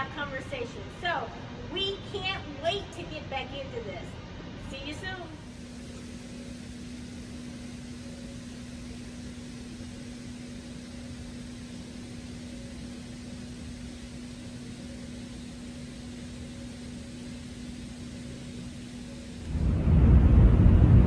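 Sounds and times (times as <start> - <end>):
mechanical hum: 0.0 - 21.0.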